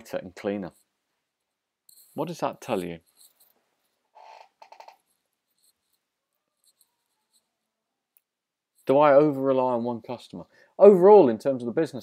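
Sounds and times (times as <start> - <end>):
faint scrape or rustle: 1.9 - 4.1.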